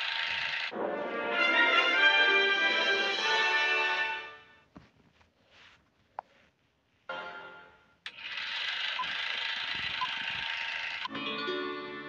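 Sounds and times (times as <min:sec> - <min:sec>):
film projector clattering: 0:00.0 - 0:00.7, 0:08.1 - 0:11.1.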